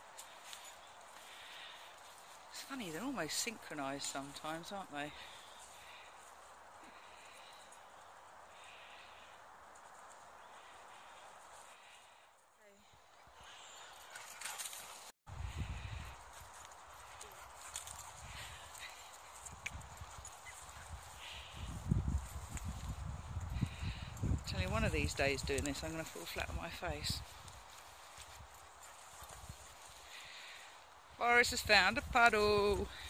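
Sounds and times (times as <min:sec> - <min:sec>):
faint outdoor hiss: 0:00.0 - 0:33.0
footsteps on rough grass: 0:13.5 - 0:31.1
wind rumble on microphone: 0:15.3 - 0:30.0, 0:31.3 - 0:33.0.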